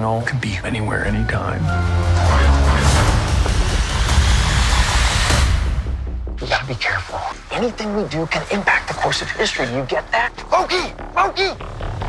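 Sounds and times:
dramatic trailer music: 0:00.0 - 0:12.0
deep bass rumble: 0:00.6 - 0:07.4.

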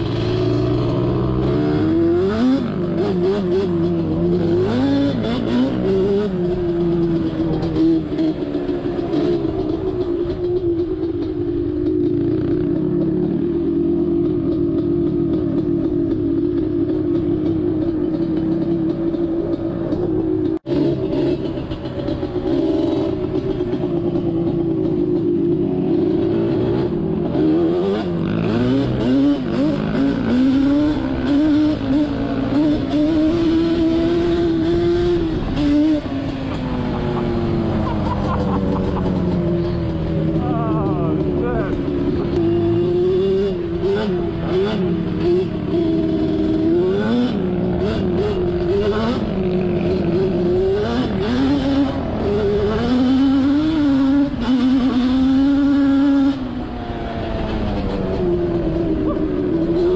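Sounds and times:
two-stroke atv engine running: 0:00.0 - 0:59.9.

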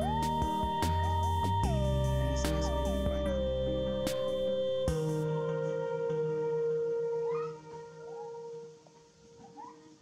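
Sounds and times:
background music held tone: 0:00.0 - 0:10.0
macaque coo calls: 0:07.2 - 0:08.6, 0:09.4 - 0:10.0.

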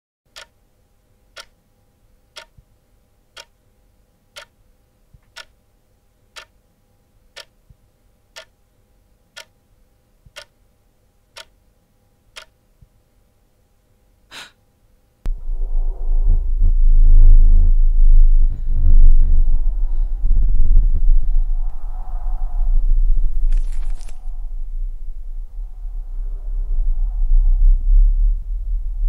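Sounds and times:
clock ticking: 0:00.3 - 0:00.6, 0:01.4 - 0:01.6, 0:02.4 - 0:02.7, 0:03.4 - 0:03.6, 0:04.4 - 0:04.6, 0:05.2 - 0:05.6, 0:06.4 - 0:06.6, 0:07.4 - 0:07.6, 0:08.4 - 0:08.6, 0:09.4 - 0:09.6, 0:10.2 - 0:10.6, 0:11.4 - 0:11.6, 0:12.3 - 0:12.6
faint steady hum: 0:00.3 - 0:29.0.

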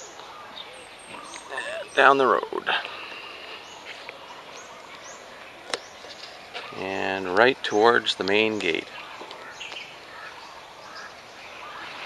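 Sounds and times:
bird chirps: 0:00.0 - 0:12.0.

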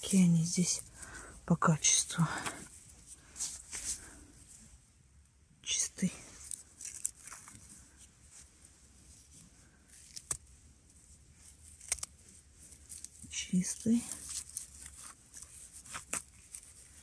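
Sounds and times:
rustling of pine needles: 0:06.0 - 0:17.0.

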